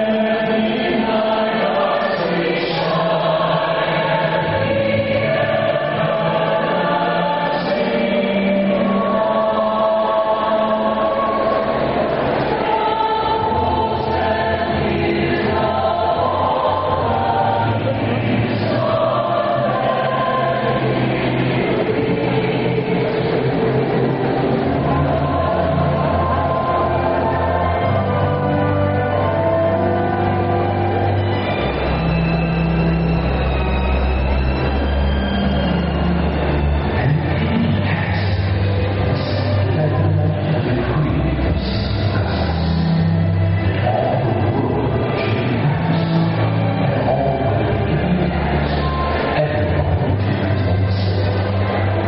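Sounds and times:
choir singing long chords: 0.0 - 52.0.

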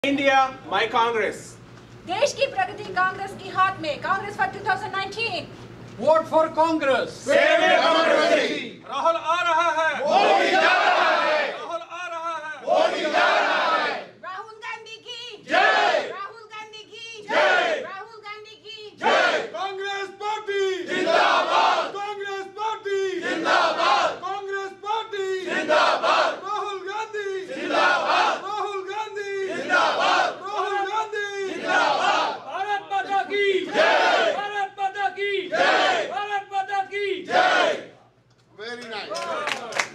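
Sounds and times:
group chanting a slogan: 7.2 - 8.8, 10.0 - 11.7, 12.6 - 14.2, 15.4 - 16.2, 17.2 - 17.9, 19.0 - 24.3, 25.2 - 34.6, 35.2 - 36.3, 36.9 - 38.0.

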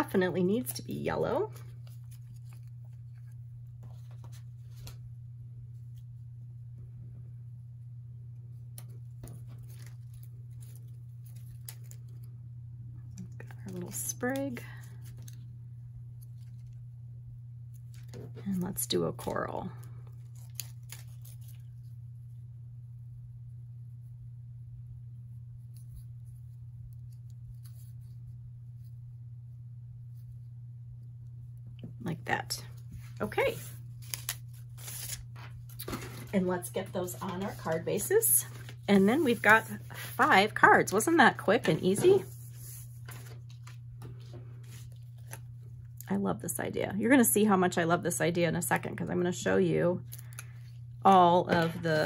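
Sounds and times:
steady low hum: 0.0 - 52.0
paper pieces rustling and clicking: 34.0 - 36.4, 42.0 - 45.4.

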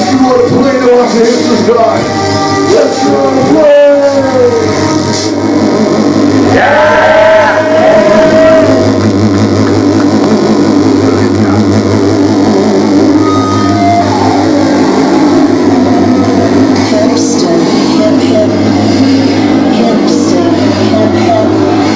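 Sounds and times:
noise-rap with electric guitar: 0.0 - 21.9.

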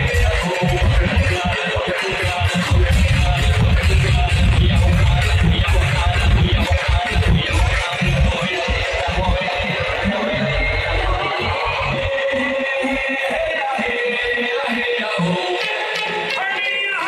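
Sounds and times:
electronic dance music: 0.0 - 17.0.

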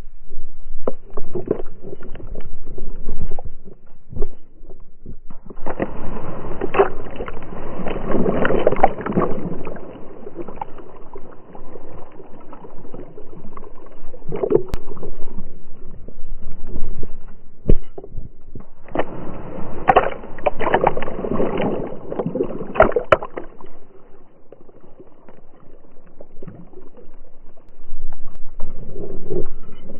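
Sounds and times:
water splashing and churning: 0.0 - 29.9.

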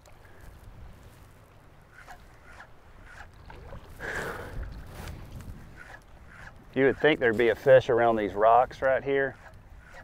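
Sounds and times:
wind rumbling on microphone: 0.0 - 10.0
shallow water sloshing: 2.0 - 6.7.

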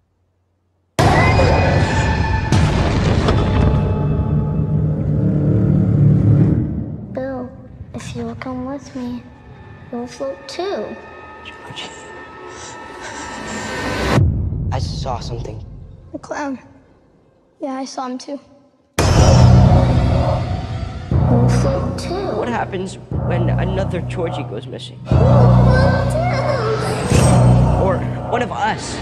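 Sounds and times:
deep booming hit with rumble: 1.0 - 7.0, 19.0 - 24.4
low rumbling drone: 1.0 - 16.1, 19.0 - 29.0.

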